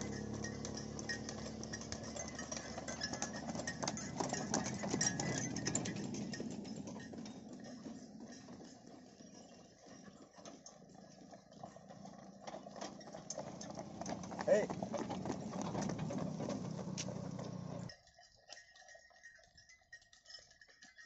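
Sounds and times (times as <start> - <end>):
cart rattling: 0.0 - 17.9
hooves clopping on road: 0.0 - 21.0
man shouting: 14.5 - 14.7.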